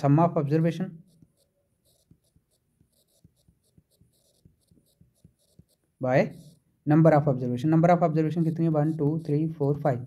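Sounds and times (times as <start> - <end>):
stylus tapping on tablet screen: 1.0 - 6.6.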